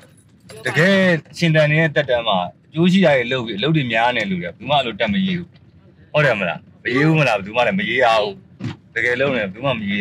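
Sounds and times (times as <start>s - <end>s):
man talking in car: 0.5s - 5.5s, 6.1s - 10.0s.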